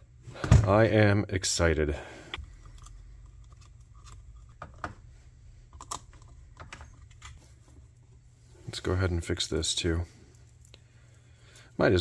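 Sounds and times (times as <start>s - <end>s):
low hum: 2.3s - 8.7s.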